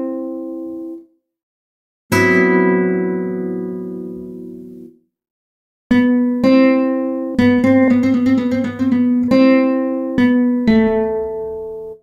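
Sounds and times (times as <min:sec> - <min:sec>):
classical guitar chord ringing: 0:02.1 - 0:04.9, 0:05.9 - 0:12.0.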